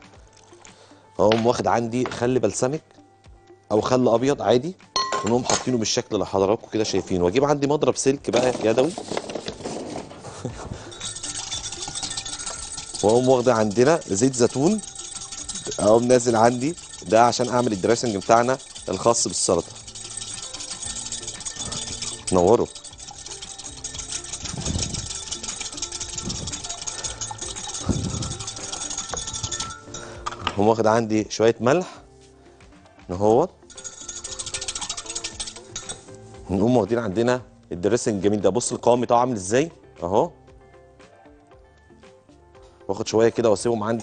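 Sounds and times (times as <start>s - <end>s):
whisk clicking against glass: 10.9s - 30.2s, 33.7s - 36.2s.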